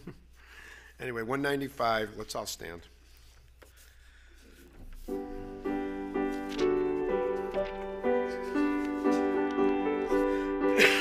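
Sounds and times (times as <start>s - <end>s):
grand piano chords: 5.0s - 11.0s.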